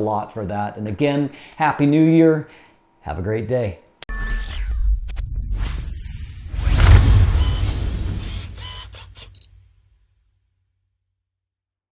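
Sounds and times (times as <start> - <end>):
low boom: 6.5 - 8.6.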